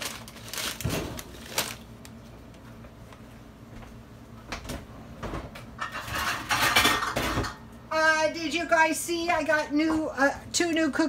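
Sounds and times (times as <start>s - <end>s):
plastic snack bag crinkling: 0.0s - 2.6s.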